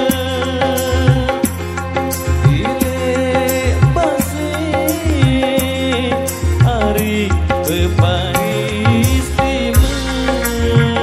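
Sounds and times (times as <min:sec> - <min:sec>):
electric guitar: 0:00.0 - 0:11.0
keyboard melody: 0:00.0 - 0:11.0
low drum hits: 0:09.0 - 0:11.0.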